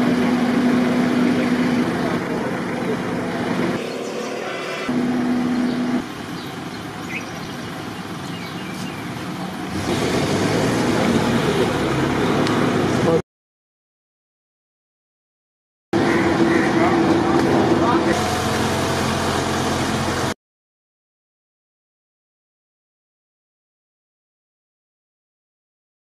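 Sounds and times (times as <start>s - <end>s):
steady hum: 0.0s - 9.7s
emergency vehicle engines running: 0.0s - 13.2s, 16.0s - 20.4s
street noise: 0.0s - 13.2s, 16.0s - 20.4s.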